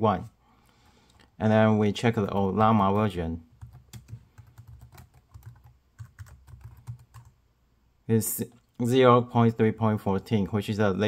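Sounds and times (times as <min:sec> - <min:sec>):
computer keyboard typing: 0:02.1 - 0:07.4.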